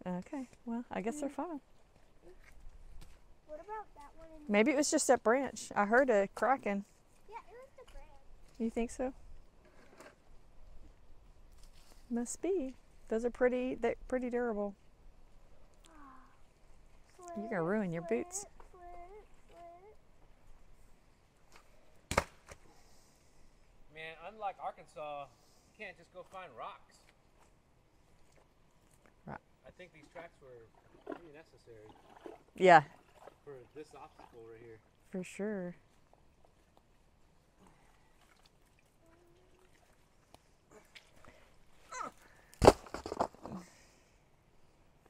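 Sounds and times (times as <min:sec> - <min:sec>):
loud slap: 0:22.1 - 0:22.6
plastic board smacking the ground: 0:22.1 - 0:22.6, 0:42.6 - 0:43.6.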